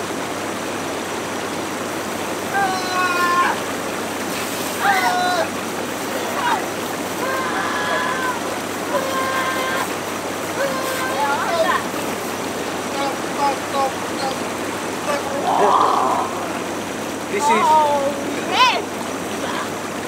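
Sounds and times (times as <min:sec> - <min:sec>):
hot tub jets rushing: 0:00.0 - 0:20.0
outdoor shower running: 0:00.0 - 0:20.0
person making wordless sounds: 0:04.8 - 0:12.2, 0:12.8 - 0:16.7.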